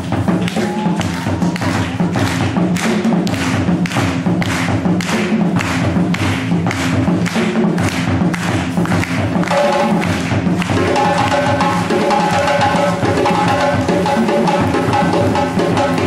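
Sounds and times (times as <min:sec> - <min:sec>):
hand drum strikes: 0:00.0 - 0:16.0.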